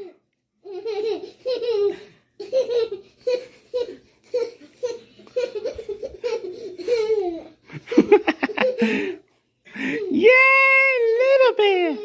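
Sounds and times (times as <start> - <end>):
young child laughing: 0.7 - 9.2.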